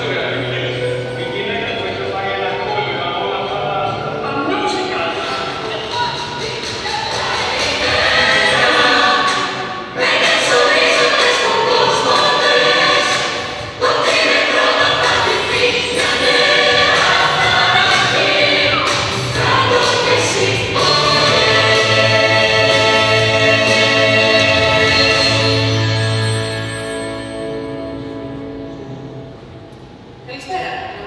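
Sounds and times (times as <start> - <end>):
choir singing with accompaniment: 5.0 - 28.7.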